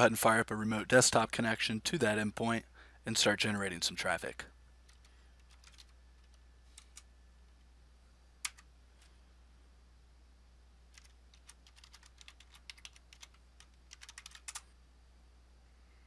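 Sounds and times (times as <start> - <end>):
computer keyboard keys clicking: 4.9 - 7.1, 8.4 - 8.6, 10.9 - 14.7.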